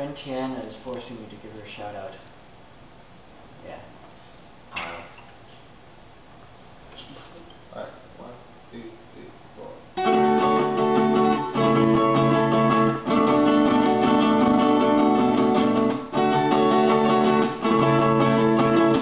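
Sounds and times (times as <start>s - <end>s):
acoustic guitars strummed: 10.0s - 19.0s.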